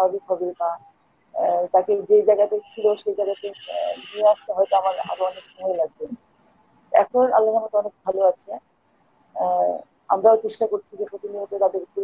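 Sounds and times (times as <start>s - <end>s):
person talking over video call: 0.0s - 0.8s, 1.4s - 6.2s, 6.9s - 8.6s, 9.4s - 12.0s.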